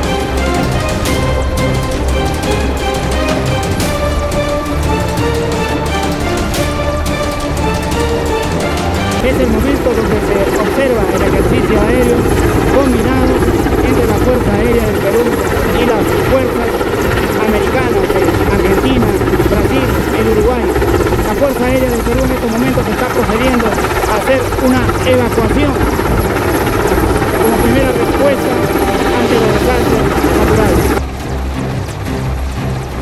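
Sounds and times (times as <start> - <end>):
helicopter hovering: 0.0 - 33.0.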